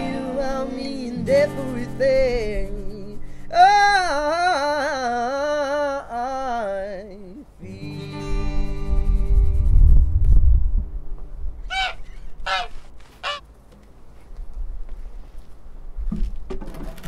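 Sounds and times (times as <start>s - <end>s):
person singing with vibrato: 0.0s - 9.9s
acoustic guitars: 0.0s - 12.8s.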